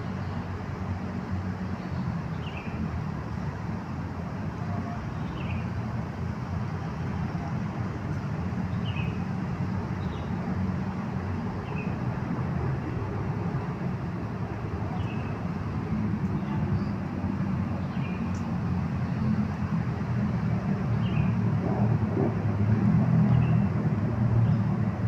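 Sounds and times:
low outdoor rumble: 3.1 - 25.0.

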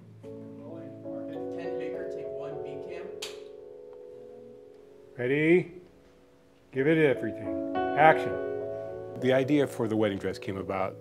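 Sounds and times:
held chord background music: 0.0 - 11.0
clapperboard snap: 3.2 - 3.5.

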